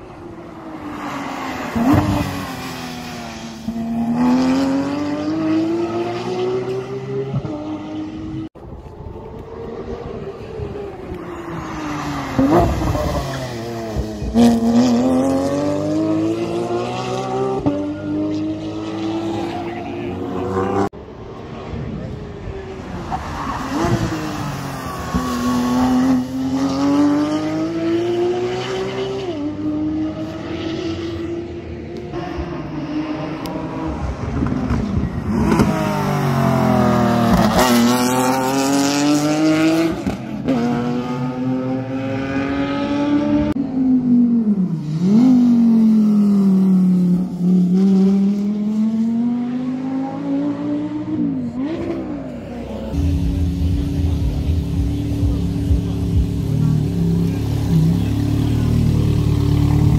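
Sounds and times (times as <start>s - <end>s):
race car engine revving past: 9.4s - 20.9s, 21.5s - 43.6s.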